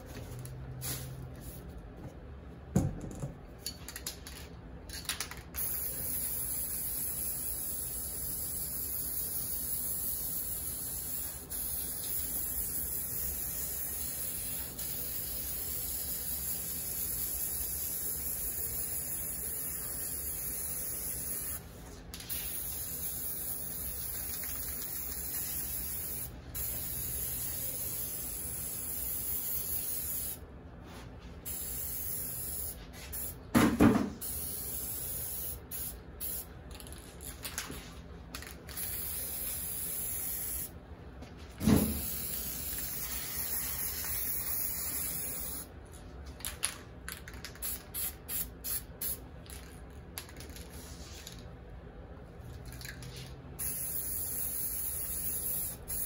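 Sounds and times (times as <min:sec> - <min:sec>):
spray paint can hissing: 0:05.2 - 0:30.4, 0:31.4 - 0:33.4, 0:34.2 - 0:36.9, 0:38.4 - 0:40.7, 0:41.9 - 0:45.7, 0:47.3 - 0:49.2, 0:53.6 - 0:56.0.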